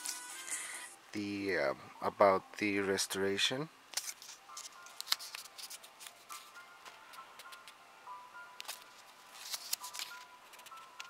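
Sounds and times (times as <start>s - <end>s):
faint music: 0.0s - 11.0s
paper pages flipping: 3.9s - 7.8s, 8.6s - 11.0s.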